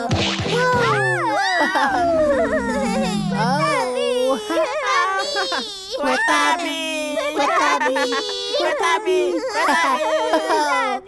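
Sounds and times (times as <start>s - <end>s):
high-pitched baby-like voices squealing: 0.6s - 6.4s.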